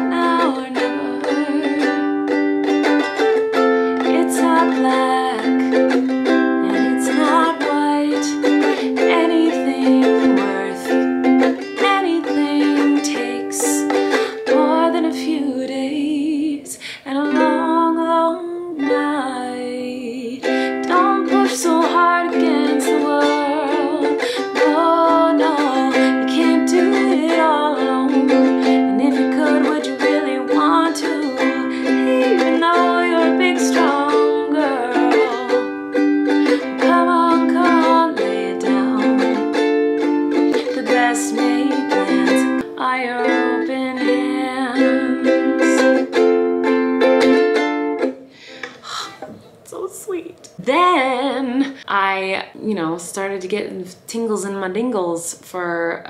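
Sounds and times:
woman singing: 0.0 - 2.4, 3.9 - 39.6, 40.3 - 46.1, 48.8 - 56.0
ukulele strumming: 0.0 - 52.2.

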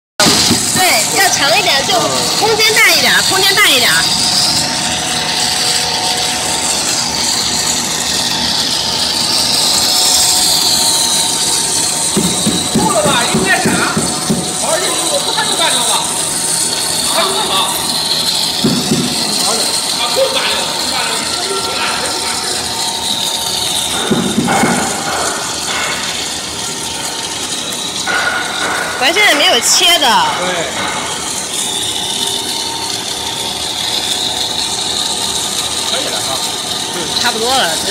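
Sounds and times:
constant machine hums: 0.2 - 37.9
high wavering whine: 0.2 - 37.9
production line machine noise: 0.2 - 37.9.

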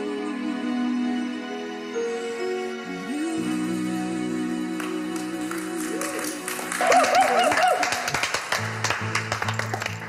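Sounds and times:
background music with low notes: 0.0 - 10.0
singing: 3.0 - 7.8
applause: 4.8 - 10.0.

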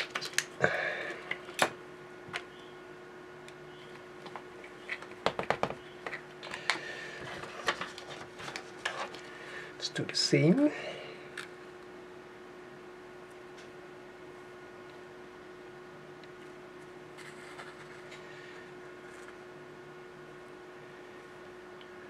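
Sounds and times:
gloved hands handling small objects: 0.0 - 1.7
faint steady hum: 0.0 - 22.0.

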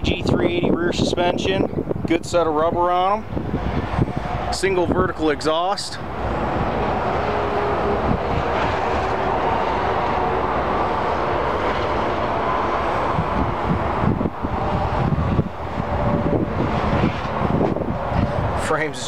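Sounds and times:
vehicle noise: 0.0 - 19.0.

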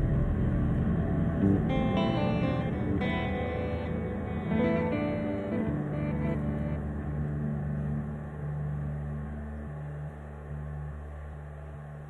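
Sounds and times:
guitar strumming: 0.0 - 9.2
low amplified instrument drone: 0.0 - 12.0.

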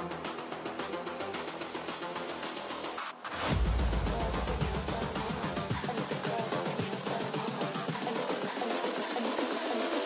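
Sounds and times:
music with fast drums over loudspeakers: 3.5 - 10.0.

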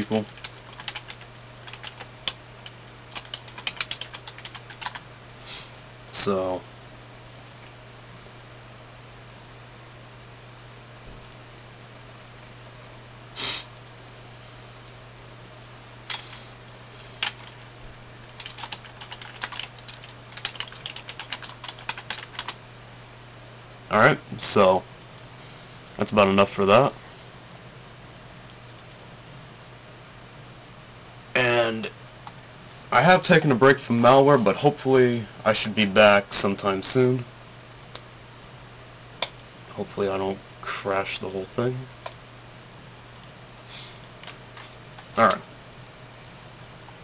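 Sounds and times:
steady low hum: 0.0 - 47.0
typing on computer keyboard: 0.2 - 5.0, 17.2 - 17.6, 18.4 - 22.6.

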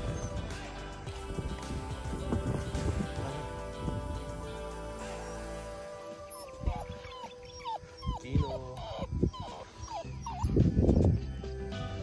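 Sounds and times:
background music: 0.0 - 12.0
dog whining: 6.2 - 11.0.

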